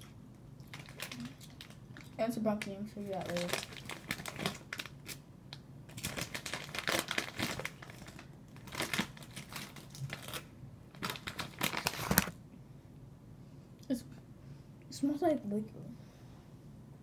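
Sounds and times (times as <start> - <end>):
plastic pouch crinkling: 0.6 - 5.2, 5.9 - 12.4.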